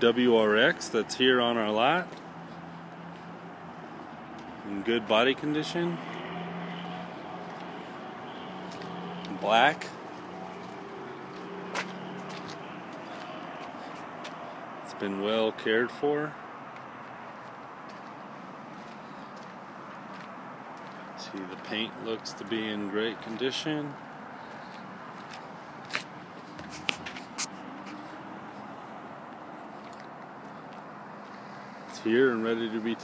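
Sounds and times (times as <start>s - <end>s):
footsteps on pavement: 1.9s - 4.7s, 6.0s - 14.8s, 16.7s - 21.7s, 23.9s - 31.4s.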